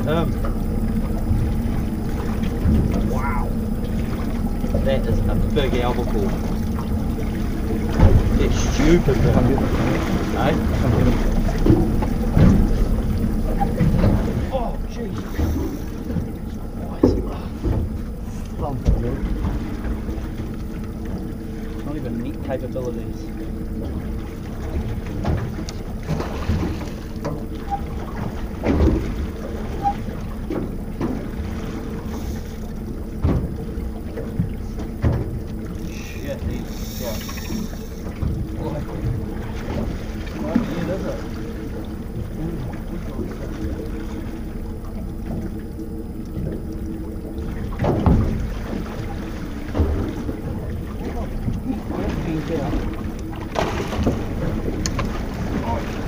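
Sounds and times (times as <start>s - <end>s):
outboard motor running: 0.0s - 56.0s.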